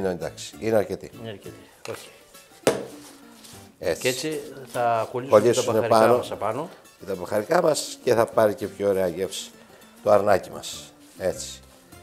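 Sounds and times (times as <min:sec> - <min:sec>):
plastic bottle knocking on wooden board: 0:02.6 - 0:03.0.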